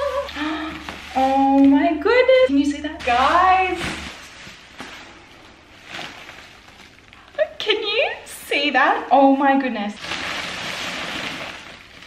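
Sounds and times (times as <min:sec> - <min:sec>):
plastic packaging rustling: 0:00.0 - 0:08.4, 0:09.9 - 0:12.0.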